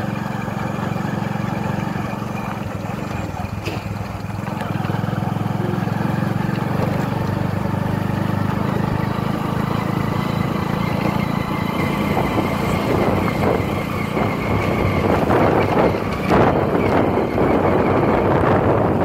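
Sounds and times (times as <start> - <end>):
motorcycle engine running: 0.0 - 19.0
jolting on bumpy dirt track: 1.0 - 19.0
wind noise: 8.6 - 19.0.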